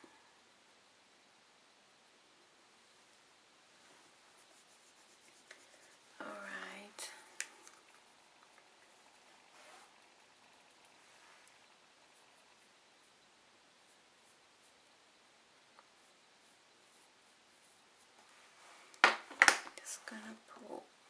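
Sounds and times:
faint rustle: 2.7 - 13.1, 15.7 - 19.0.

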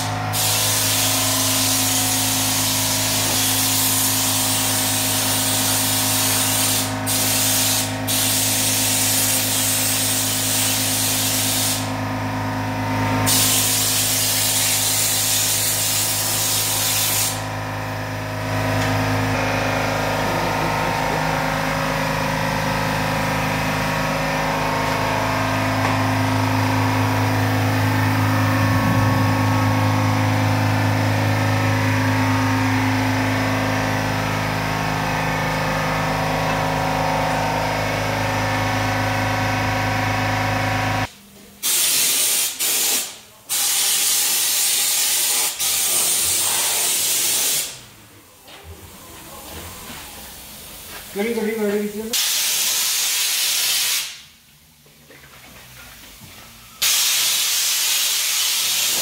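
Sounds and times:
spray gun hissing: 0.0 - 11.9, 13.3 - 17.4, 41.6 - 47.8, 52.2 - 54.2, 56.8 - 59.0
steady mechanical hum: 0.0 - 59.0.

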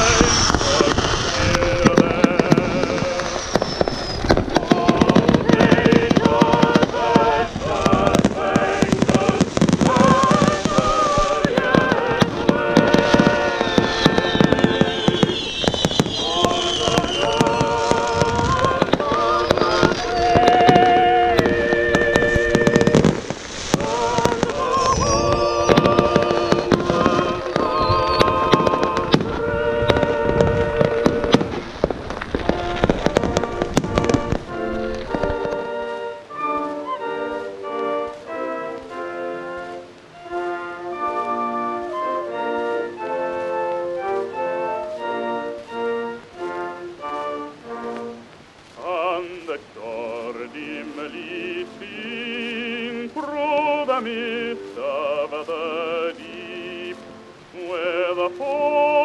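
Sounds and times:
music with singing: 0.0 - 31.8, 32.4 - 59.0
fireworks bangs and crackles: 0.0 - 59.0.

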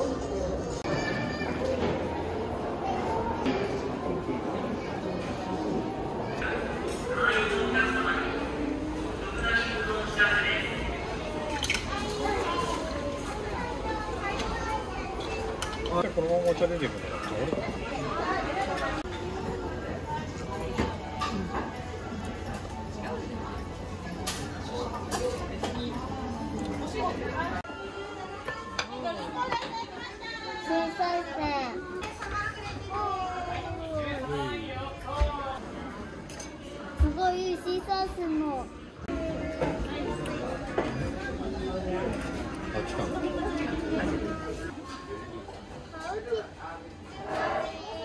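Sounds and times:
young children talking: 0.0 - 22.0, 24.4 - 34.6, 36.7 - 48.0
people chattering indoors: 0.0 - 48.0.

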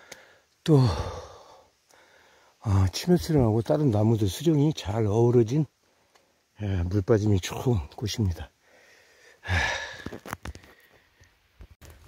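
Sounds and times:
breathy sighing exhale: 8.6 - 11.0.

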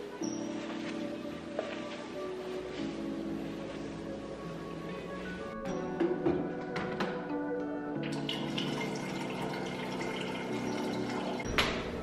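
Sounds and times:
background music: 0.0 - 12.0
water running into a kettle: 8.0 - 11.5.

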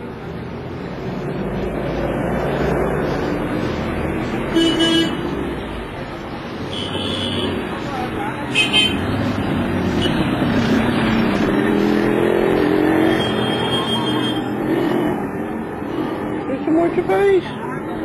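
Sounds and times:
street traffic: 0.0 - 18.0
vehicle horns tooting: 4.5 - 5.3, 6.7 - 7.6, 8.5 - 9.0, 13.0 - 14.5
voices: 5.6 - 18.0.

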